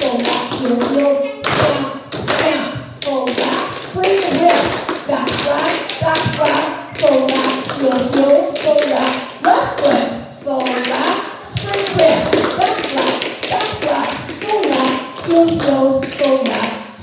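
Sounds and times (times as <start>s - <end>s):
woman calling steps: 0.0s - 17.0s.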